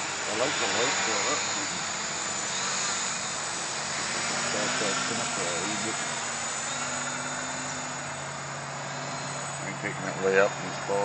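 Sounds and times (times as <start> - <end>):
drone propellers whirring: 0.0 - 11.0.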